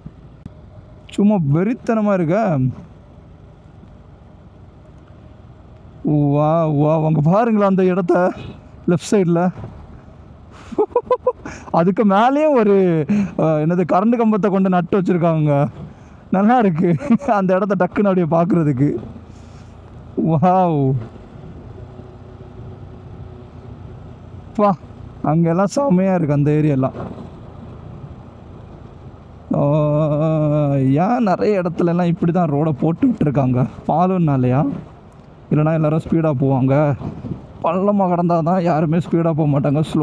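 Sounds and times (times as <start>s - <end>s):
motorcycle engine rumble: 0.0s - 40.0s
road noise: 0.0s - 40.0s.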